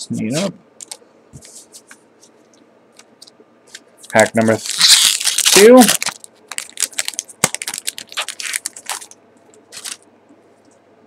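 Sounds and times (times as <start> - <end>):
foil wrapper crinkling: 4.0 - 10.0.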